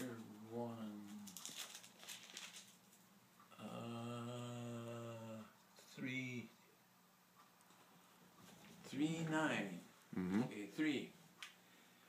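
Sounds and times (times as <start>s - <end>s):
paper pages rustling: 1.1s - 3.0s
elderly man saying uhhh: 3.5s - 5.5s, 10.1s - 10.6s.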